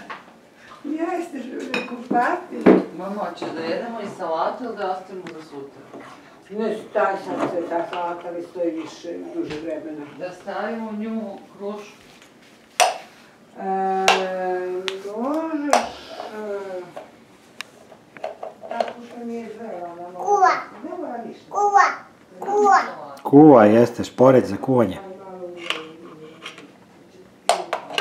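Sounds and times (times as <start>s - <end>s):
faint child's voice: 21.5s - 23.0s.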